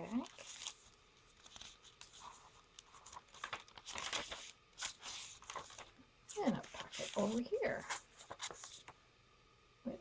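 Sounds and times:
paper rustling and scraping: 0:00.1 - 0:09.0.

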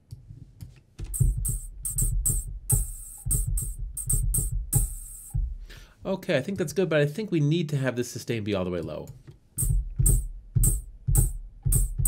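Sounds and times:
low thud: 0:01.0 - 0:05.7
synthesized hi-hat hits: 0:01.0 - 0:05.8, 0:09.6 - 0:12.0.

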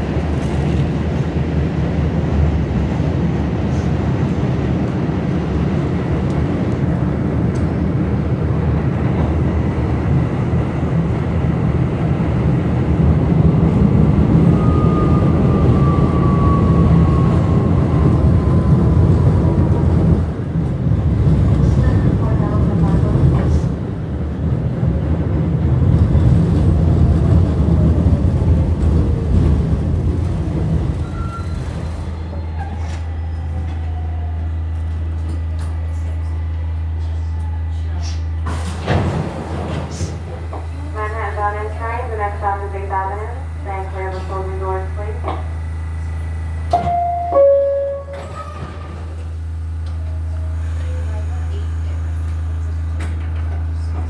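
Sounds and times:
subway train wheels rumbling: 0:00.0 - 0:54.0
high train whine falling in pitch: 0:14.3 - 0:19.8, 0:45.0 - 0:48.5.

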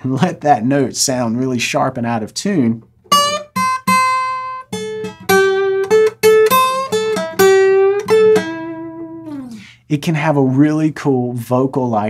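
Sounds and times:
acoustic guitar fingerpicking blues: 0:02.8 - 0:09.8.

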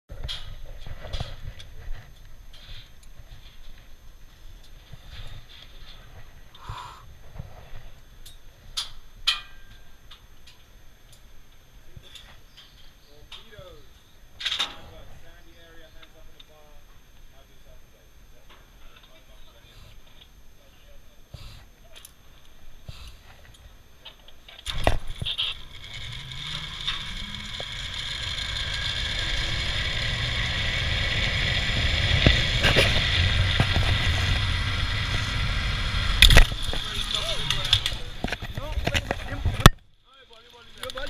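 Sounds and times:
low rumble: 0:24.9 - 0:39.7.

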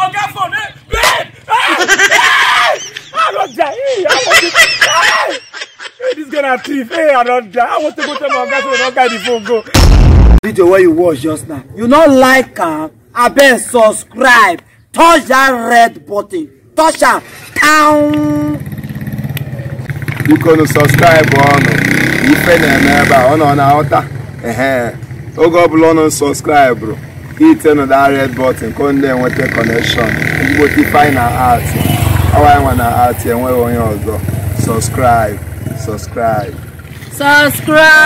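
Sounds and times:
man shouting: 0:00.0 - 0:05.4
man wailing in distress: 0:01.0 - 0:05.5.

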